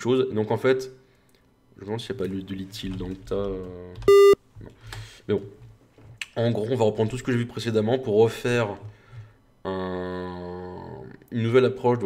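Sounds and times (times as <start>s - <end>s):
buzzy electronic beep: 4.1s - 4.4s.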